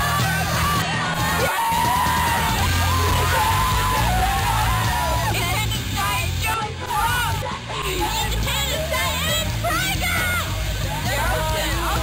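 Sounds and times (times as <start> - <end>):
loud rock music: 0.0 - 12.0
steady bass line: 0.0 - 12.0.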